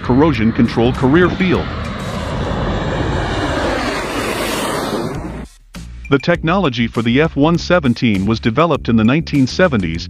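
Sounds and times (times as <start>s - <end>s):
jet passing overhead roar: 0.0s - 5.6s.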